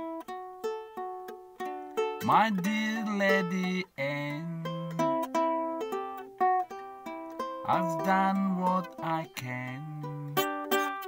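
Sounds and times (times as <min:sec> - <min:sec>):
ukulele chords strummed: 0:00.0 - 0:11.0
person singing: 0:02.0 - 0:05.4, 0:06.6 - 0:11.0.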